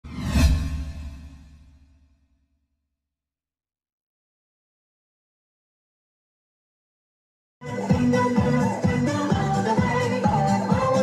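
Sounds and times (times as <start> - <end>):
whoosh: 0.0 - 2.2.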